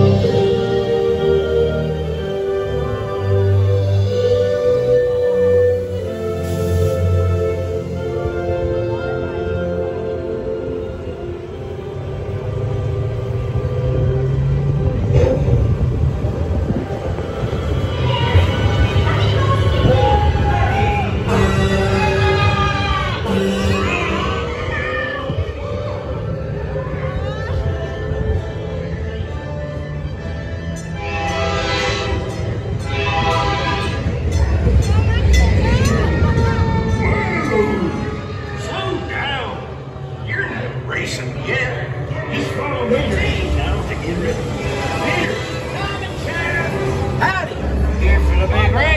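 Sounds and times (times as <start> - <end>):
music with gliding tones: 0.0 - 48.9
ride vehicle rumbling on track: 0.0 - 48.9.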